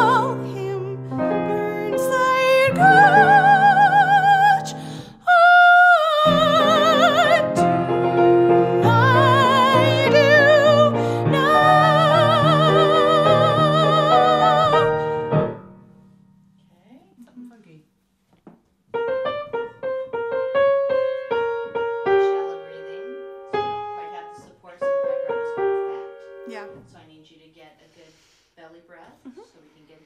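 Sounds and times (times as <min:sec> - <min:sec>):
piano playing notes and chords: 0:00.0 - 0:05.2, 0:06.0 - 0:16.4, 0:18.9 - 0:26.8
woman singing with vibrato: 0:00.0 - 0:15.4.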